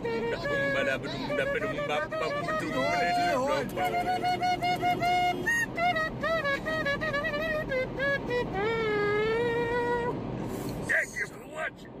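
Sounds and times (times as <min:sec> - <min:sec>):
road noise inside moving car: 0:00.0 - 0:12.0.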